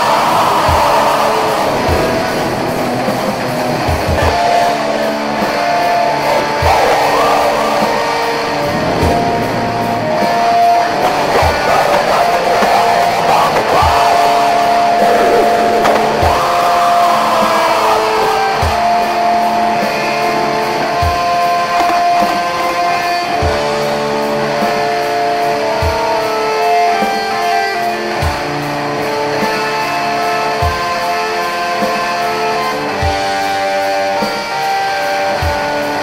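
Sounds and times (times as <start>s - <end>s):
slow steady drum beat: 0.0s - 36.0s
sustained guitar chords: 0.0s - 36.0s.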